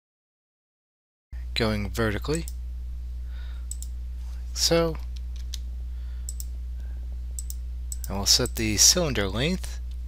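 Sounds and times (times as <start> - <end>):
steady low hum: 1.4 - 10.0
computer mouse clicks: 3.7 - 3.9, 6.3 - 6.5, 7.4 - 8.2.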